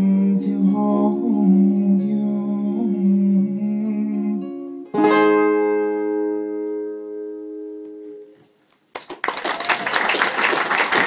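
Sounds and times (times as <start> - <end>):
acoustic guitar notes ringing: 0.0 - 8.4.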